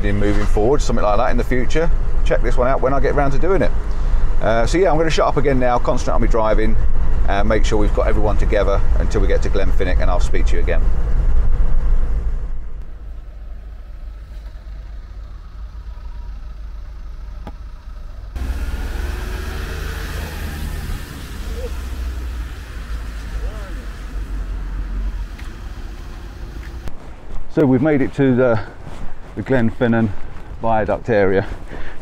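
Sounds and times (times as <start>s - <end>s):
engine and road rumble in cab: 0.0s - 32.0s
outdoor vehicle rumble: 0.0s - 32.0s.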